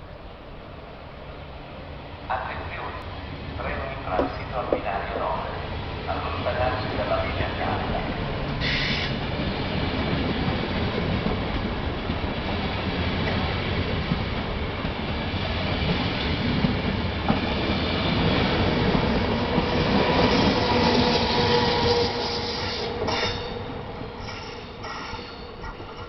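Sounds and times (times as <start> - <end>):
train wheels rumbling on rail: 2.3 - 26.0.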